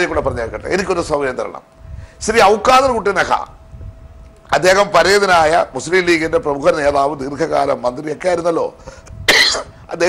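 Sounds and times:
man speaking: 0:00.0 - 0:03.5, 0:04.5 - 0:08.8
short harsh cough: 0:09.3 - 0:09.8.

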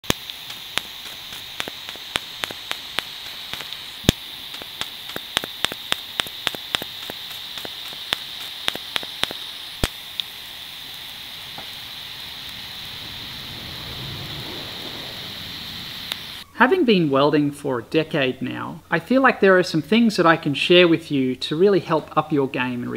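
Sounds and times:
welding arc hissing and crackling: 0:00.0 - 0:17.4.

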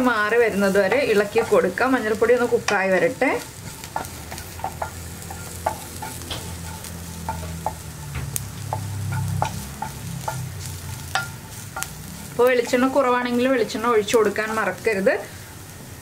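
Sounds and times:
spatula scraping frying onions: 0:00.0 - 0:16.0.

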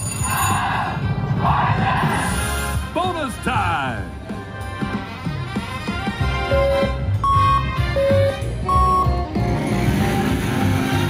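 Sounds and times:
slot machine electronic music: 0:05.6 - 0:11.0.

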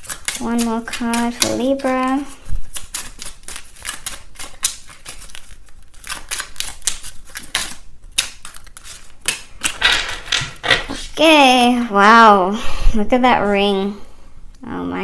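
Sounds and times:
cards being shuffled: 0:00.0 - 0:11.2.

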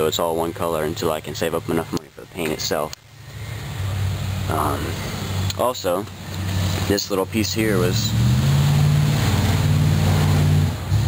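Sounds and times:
car driving past: 0:06.1 - 0:11.0.

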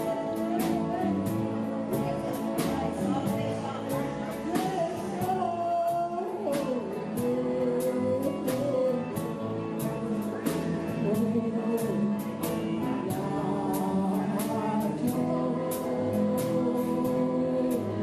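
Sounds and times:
drum kit beat: 0:00.0 - 0:18.0
electric guitars: 0:00.0 - 0:18.0
woman singing into microphone: 0:00.0 - 0:18.0.

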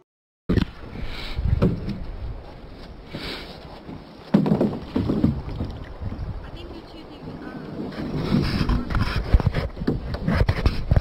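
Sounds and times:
kayak hull scraping dock: 0:00.5 - 0:06.4, 0:07.3 - 0:11.0
hollow knock of kayak: 0:04.3 - 0:05.9.

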